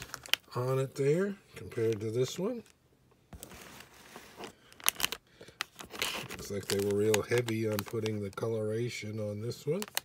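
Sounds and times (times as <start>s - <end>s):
plastic wrapper crinkling: 0.0s - 0.8s, 3.4s - 10.0s.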